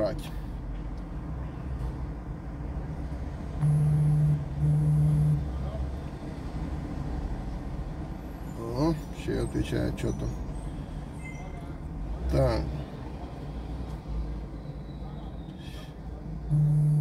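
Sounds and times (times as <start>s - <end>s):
low rumble of street traffic: 0.0s - 17.0s
phone buzzing: 3.6s - 5.5s, 16.5s - 17.0s.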